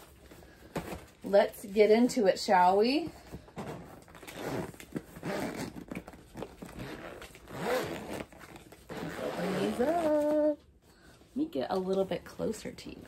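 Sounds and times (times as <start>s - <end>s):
zipper being pulled open: 3.8s - 10.5s.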